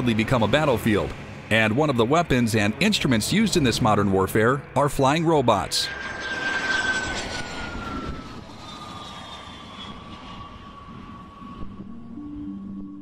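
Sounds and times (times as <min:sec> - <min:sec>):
jet engine roar and whine: 0:00.0 - 0:13.0
music: 0:11.8 - 0:13.0.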